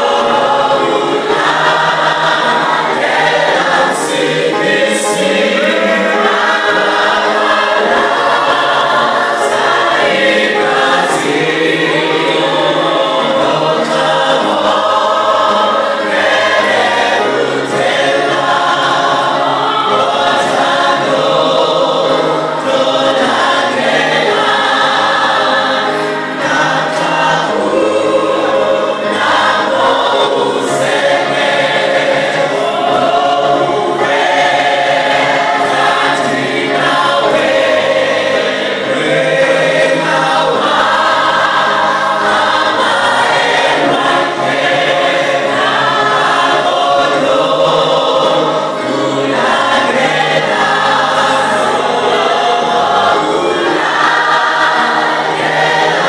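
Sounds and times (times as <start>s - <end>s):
church choir singing a hymn: 0.0s - 56.0s.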